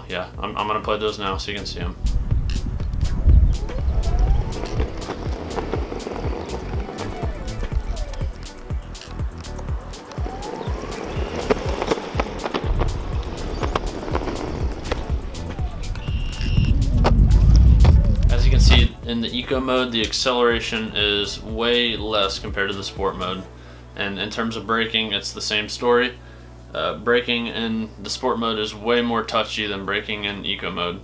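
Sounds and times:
background music: 0.0 - 26.9
wheels rolling on asphalt: 2.0 - 19.7
electric motor whine: 2.4 - 18.9.

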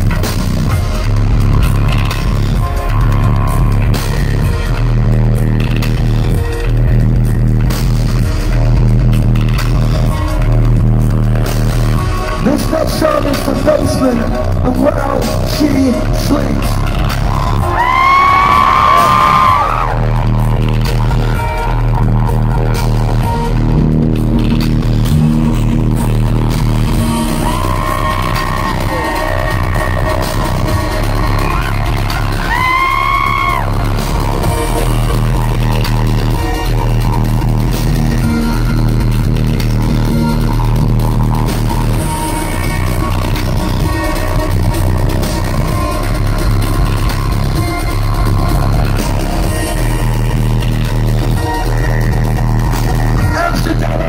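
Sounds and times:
repeating bass pattern: 0.0 - 54.0.

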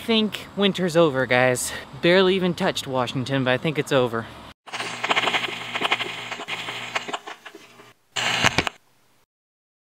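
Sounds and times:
rapid clicking and hiss: 4.7 - 8.8.

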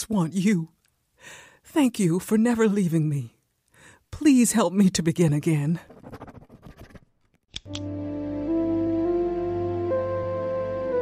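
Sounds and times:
sharp clicks: 7.5 - 7.9
soft music with low drone: 7.7 - 11.0.

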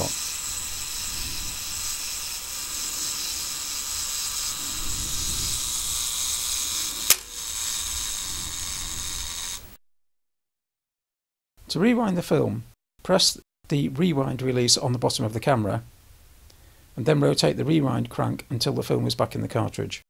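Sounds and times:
camera self-timer whirring: 0.0 - 9.8
sharp mechanism click: 7.0 - 8.0.

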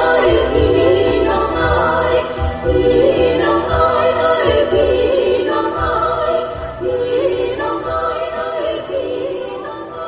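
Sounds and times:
backing music with pulsing bass: 0.0 - 10.0
group of voices singing: 0.0 - 10.0.

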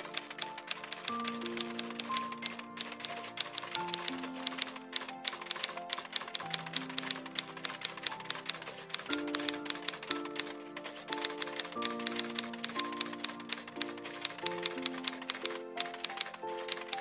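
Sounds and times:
soft background music: 0.0 - 17.0
typewriter key clicks: 0.0 - 17.0.

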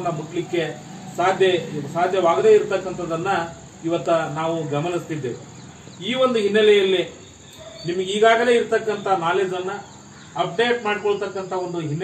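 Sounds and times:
man speaking: 0.0 - 7.2, 7.8 - 12.0
high-pitched insect drone: 0.0 - 7.6.

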